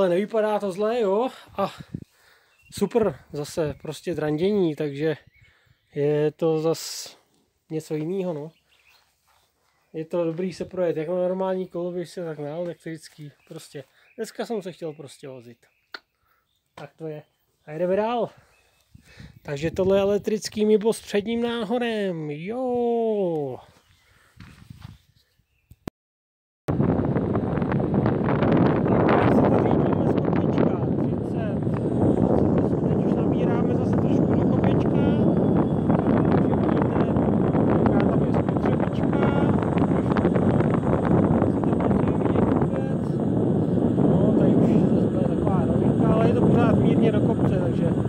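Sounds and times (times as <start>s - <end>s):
wind on microphone: 1.5s - 4.6s, 5.2s - 5.9s, 18.4s - 20.6s, 23.6s - 25.2s, 26.7s - 48.0s.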